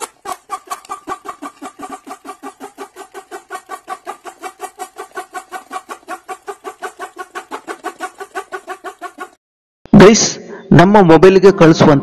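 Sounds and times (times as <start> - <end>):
fast pulsing sound: 0.0 - 9.4.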